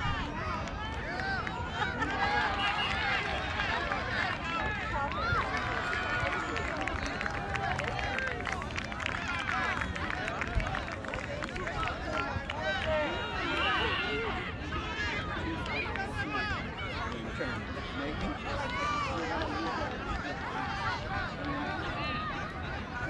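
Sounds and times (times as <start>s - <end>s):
people calling and chatting: 0.0s - 23.0s.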